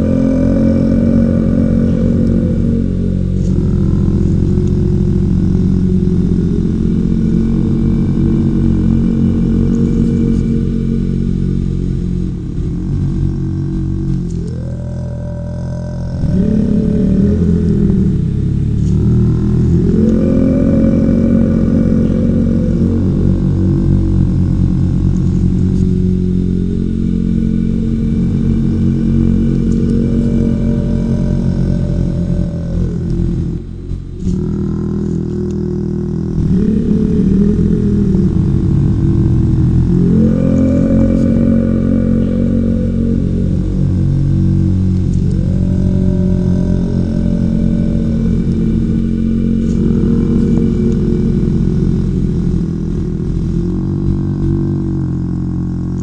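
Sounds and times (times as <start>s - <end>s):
low meditation music drone: 0.0s - 56.0s.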